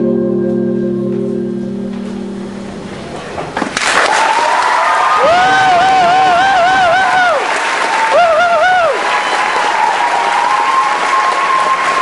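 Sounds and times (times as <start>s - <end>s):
organ-like chord: 0.0s - 3.2s
audience applause: 3.8s - 12.0s
warbling high cheer: 3.9s - 12.0s.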